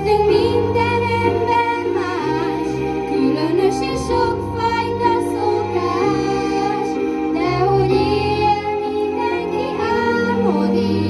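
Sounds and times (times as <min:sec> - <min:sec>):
children singing into microphones: 0:00.0 - 0:11.0.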